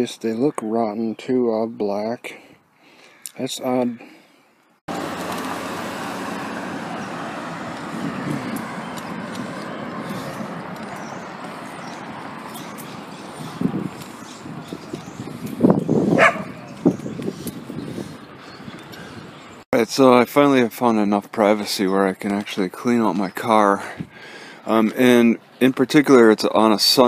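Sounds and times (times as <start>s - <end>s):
road noise: 0.0s - 27.0s
wind rushing: 5.6s - 19.6s
dogs barking: 16.1s - 16.8s.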